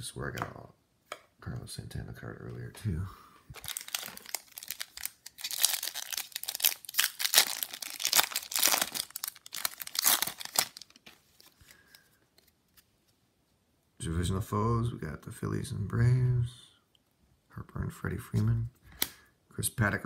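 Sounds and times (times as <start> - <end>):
wrapper tearing and crinkling: 3.6 - 11.6.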